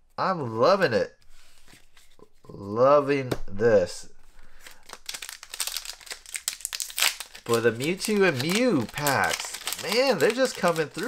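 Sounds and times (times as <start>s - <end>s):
foil wrapper crinkling: 4.6s - 11.0s.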